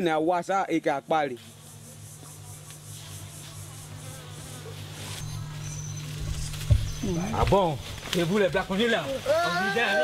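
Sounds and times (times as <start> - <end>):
high-pitched insect chirr: 0.8 - 7.8
flying insects buzzing: 0.8 - 10.0.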